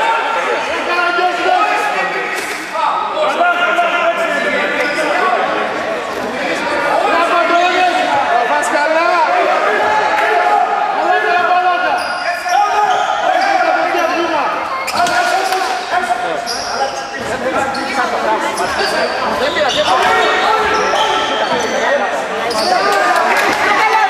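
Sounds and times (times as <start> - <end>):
shoe squeaks: 11.9 - 15.4, 16.4 - 23.1.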